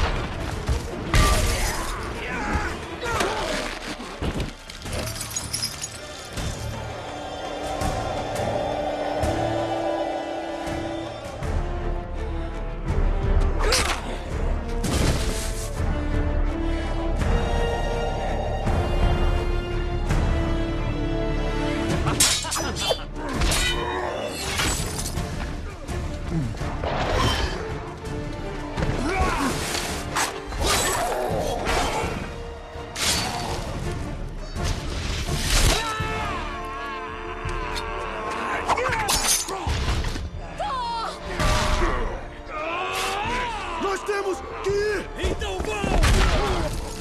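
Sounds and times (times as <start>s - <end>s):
music: 0.0s - 47.0s
orchestral film score: 0.0s - 47.0s.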